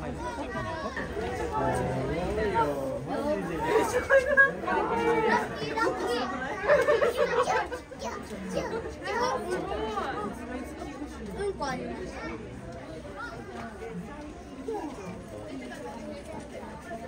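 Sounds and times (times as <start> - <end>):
people chatting: 0.0 - 17.0.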